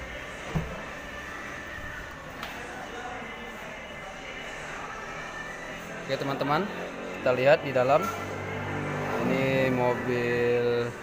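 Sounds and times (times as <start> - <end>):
car door clunk: 0.5 - 0.9.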